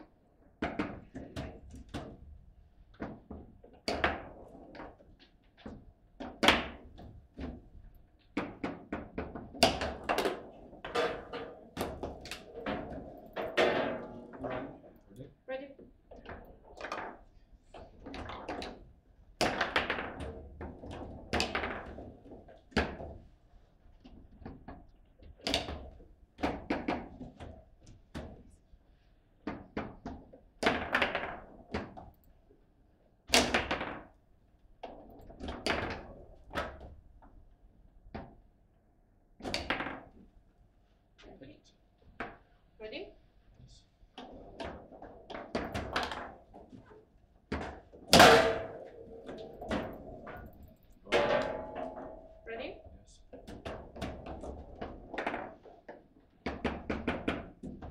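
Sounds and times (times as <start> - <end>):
ball hitting table football figures: 0.6 - 2.3, 8.3 - 14.8, 16.2 - 23.2, 29.4 - 32.1, 33.3 - 34.1, 39.4 - 40.3, 44.2 - 46.8, 47.5 - 52.4, 53.3 - 57.9
ball banging off table walls: 8.4 - 15.0, 47.5 - 52.4.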